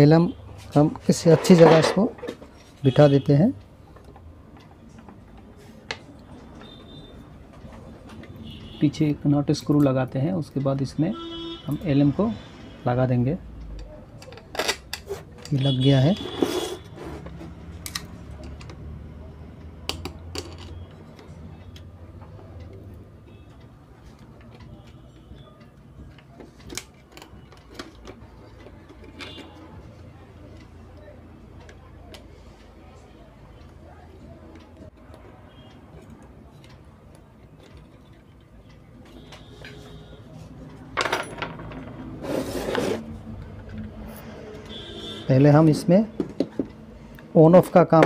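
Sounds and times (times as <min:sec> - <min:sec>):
metal scraping across wood: 0:16.2 - 0:17.6, 0:42.1 - 0:43.1.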